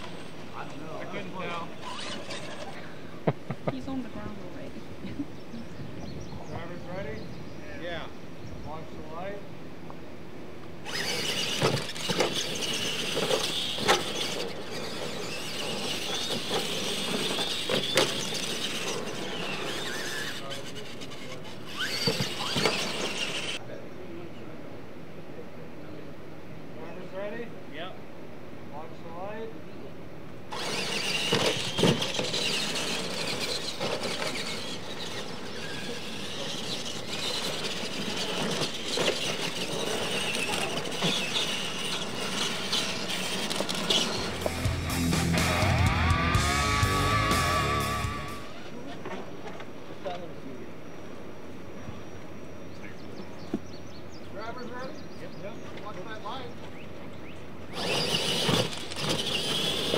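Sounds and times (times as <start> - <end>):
toy truck motors whining: 0.0 - 3.2, 10.6 - 23.6, 30.5 - 49.8, 57.5 - 59.9
tyres rushing over dirt: 10.7 - 23.6, 30.5 - 50.2, 57.7 - 59.9
trucks landing knocks: 10.9 - 19.1.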